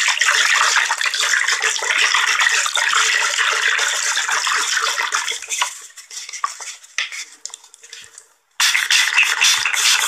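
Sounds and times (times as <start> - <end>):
spray bottle spraying: 8.6 - 10.0.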